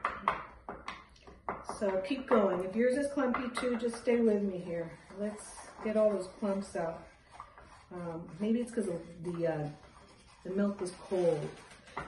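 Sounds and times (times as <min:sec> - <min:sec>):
spoon knocking and scraping bowl: 0:00.0 - 0:06.8.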